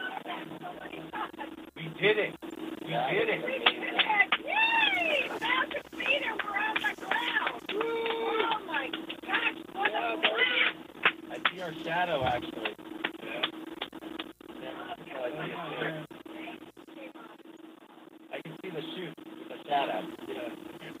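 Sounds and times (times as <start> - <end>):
steady low hum: 0.0 - 21.0
people cheering and whooping: 4.4 - 8.6.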